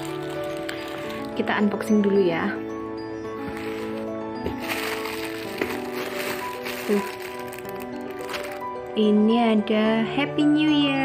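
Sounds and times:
plastic packaging crinkling: 0.0 - 2.2, 3.4 - 9.0
background music with held notes: 0.0 - 11.0.

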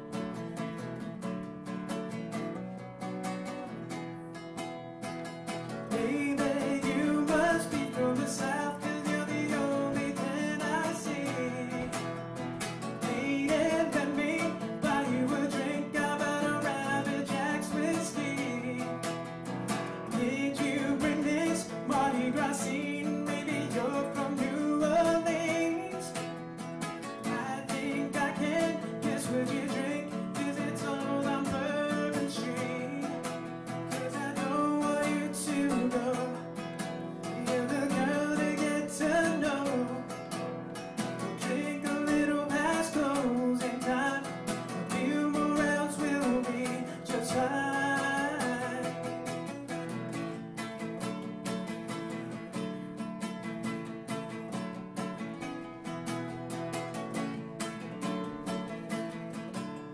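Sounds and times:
acoustic guitar: 0.0 - 59.9
man singing: 5.7 - 50.8.

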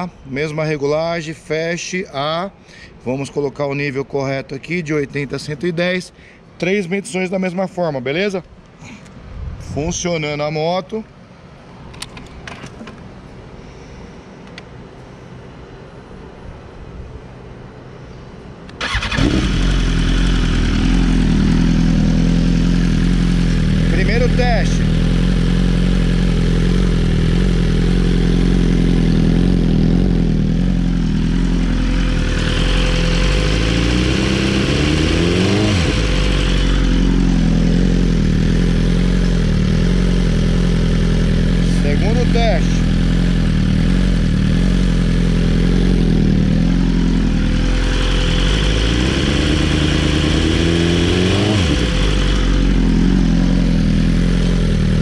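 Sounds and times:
motorcycle engine revving: 18.8 - 55.0.

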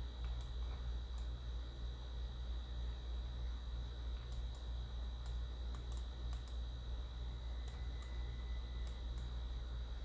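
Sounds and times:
low electrical hum: 0.0 - 10.0
thin high whine: 0.0 - 10.0.

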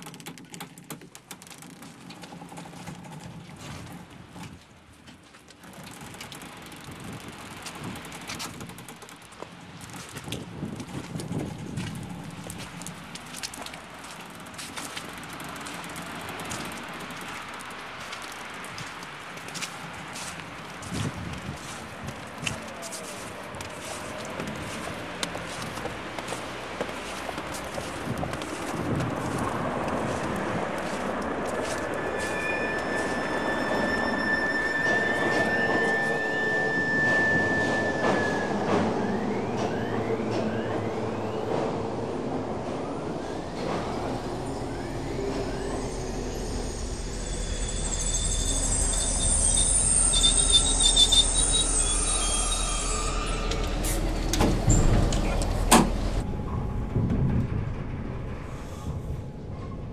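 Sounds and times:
crackling clicks: 0.0 - 4.6, 5.4 - 20.9
train rumble: 0.0 - 59.9
wheels squealing on rails: 5.6 - 59.9.

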